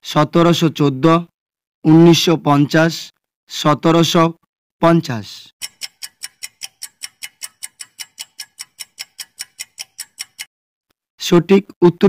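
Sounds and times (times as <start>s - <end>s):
quick timer ticking: 5.6s - 10.5s.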